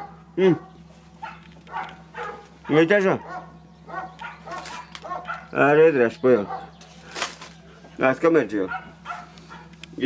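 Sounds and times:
dog barking: 0.0 - 5.6, 6.4 - 6.8, 8.6 - 9.8
steady low hum: 0.0 - 10.0.

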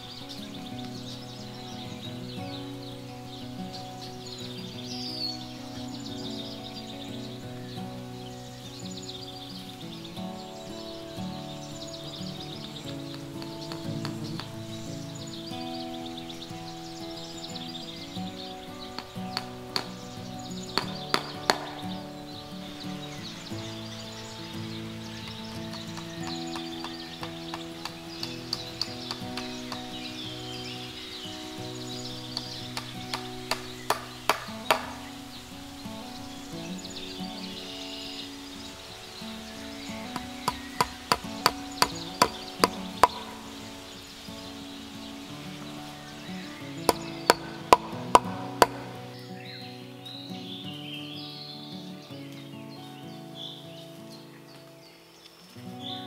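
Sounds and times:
background music: 0.0 - 54.8
hammer striking wooden post: 13.4 - 14.6, 19.0 - 20.1, 20.7 - 22.0, 25.7 - 30.0, 32.4 - 35.0, 40.1 - 43.4, 46.9 - 49.0.

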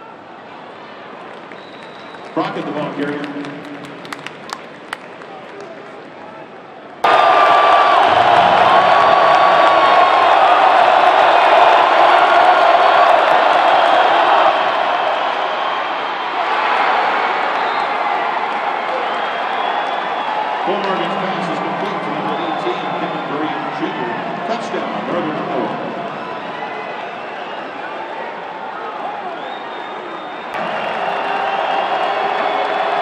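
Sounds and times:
stadium crowd roaring: 0.0 - 33.0.

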